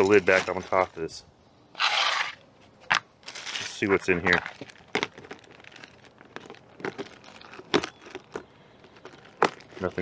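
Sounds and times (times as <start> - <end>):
plastic bags crinkling: 3.2 - 10.0.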